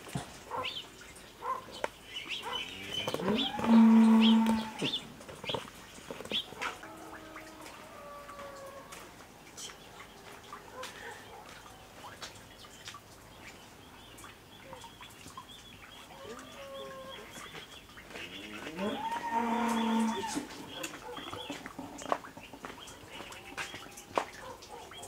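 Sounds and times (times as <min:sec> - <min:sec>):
cow mooing: 0:02.8 - 0:05.0, 0:18.4 - 0:20.5.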